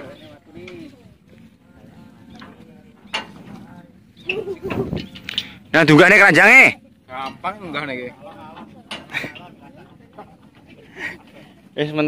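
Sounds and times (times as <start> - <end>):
faint murmur of men's voices: 0.0 - 12.0.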